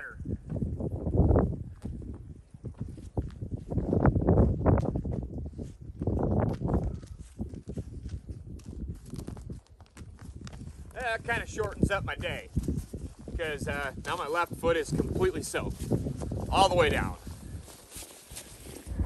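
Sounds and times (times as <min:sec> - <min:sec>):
footsteps crunching through snow: 0:02.7 - 0:19.0
low rumble: 0:18.8 - 0:19.0.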